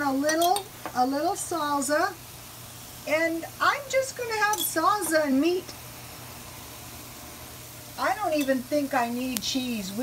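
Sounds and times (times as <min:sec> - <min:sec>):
food sizzling on a grill: 0:00.0 - 0:10.0.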